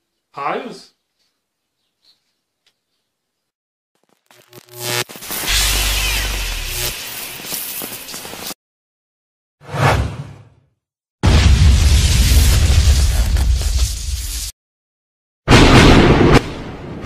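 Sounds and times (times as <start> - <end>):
electrical crackle: 4.0 - 8.6.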